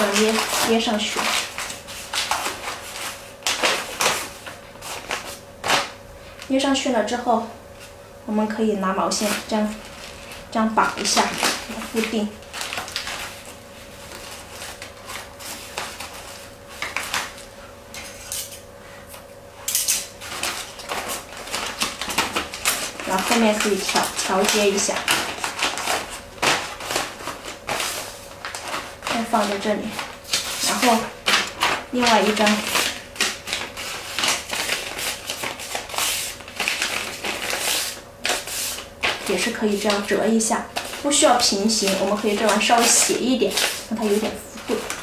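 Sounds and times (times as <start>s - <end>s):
wrapping paper rustling: 0.0s - 6.8s, 8.8s - 17.6s, 20.0s - 45.0s.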